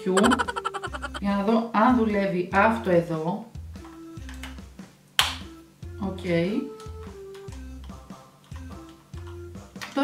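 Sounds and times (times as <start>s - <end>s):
background music: 0.0s - 3.0s, 5.4s - 9.8s.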